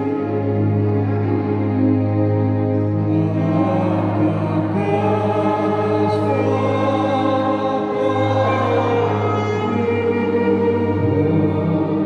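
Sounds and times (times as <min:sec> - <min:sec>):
choir singing a hymn: 0:00.0 - 0:12.0
sustained keyboard accompaniment: 0:00.0 - 0:12.0.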